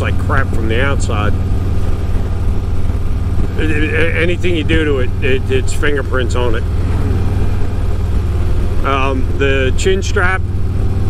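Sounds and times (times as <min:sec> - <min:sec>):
man talking: 0:00.0 - 0:01.4, 0:03.5 - 0:06.7, 0:08.8 - 0:10.5
motorcycle engine cruising: 0:00.0 - 0:11.0.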